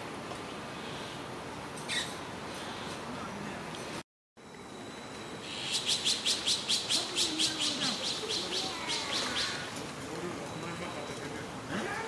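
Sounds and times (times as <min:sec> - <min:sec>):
young birds begging calls: 0:05.4 - 0:09.8.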